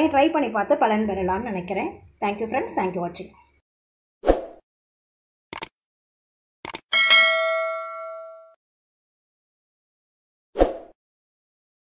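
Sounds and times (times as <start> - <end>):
bell ding ringing out: 6.9 - 8.6.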